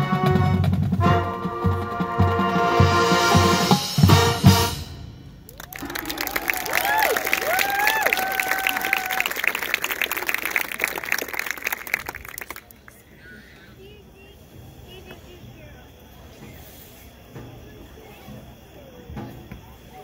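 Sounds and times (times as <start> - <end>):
marching band chord: 0.0 - 6.6
crowd applauding and cheering: 5.5 - 13.0.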